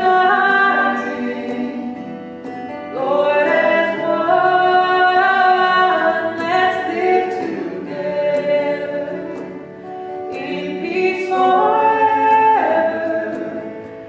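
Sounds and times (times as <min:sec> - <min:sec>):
choir singing worship song: 0:00.0 - 0:09.6, 0:10.3 - 0:13.9.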